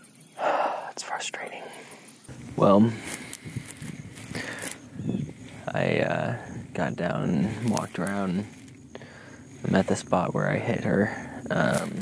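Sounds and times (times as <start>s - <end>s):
clothing rustling on microphone: 2.3s - 10.8s.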